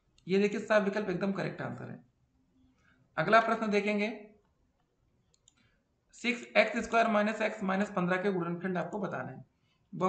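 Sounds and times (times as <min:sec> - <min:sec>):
man speaking: 0:00.2 - 0:02.1, 0:03.2 - 0:04.4, 0:06.1 - 0:10.0
faint clicks: 0:04.8 - 0:05.7.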